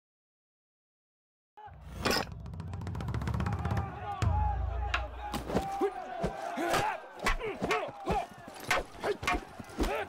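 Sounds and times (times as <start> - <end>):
crowd shouting and yelling: 1.6 - 10.0
weapon strikes and clashes: 5.3 - 10.0.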